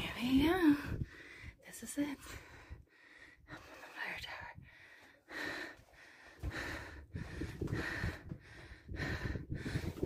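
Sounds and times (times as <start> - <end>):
person breathing hard: 0.9 - 1.6, 2.2 - 10.0
low microphone rumble: 6.5 - 10.0.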